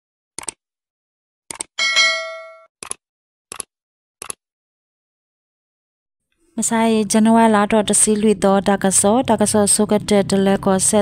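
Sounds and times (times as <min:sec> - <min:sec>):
bright bell ding: 0:01.8 - 0:02.7.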